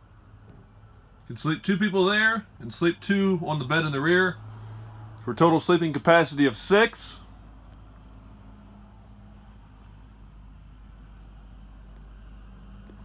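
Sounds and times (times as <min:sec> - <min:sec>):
low machinery hum: 0:00.0 - 0:13.0.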